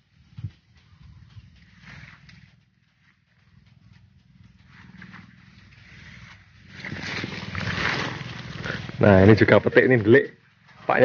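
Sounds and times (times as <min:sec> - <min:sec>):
rustling through grass and leaves: 0:01.6 - 0:03.1, 0:04.6 - 0:10.0.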